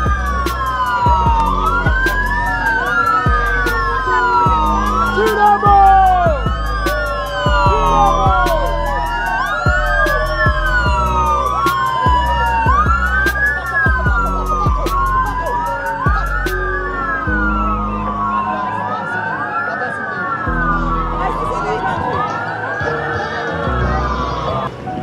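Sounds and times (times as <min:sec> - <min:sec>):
sirens rising and falling: 0:00.0 - 0:24.8.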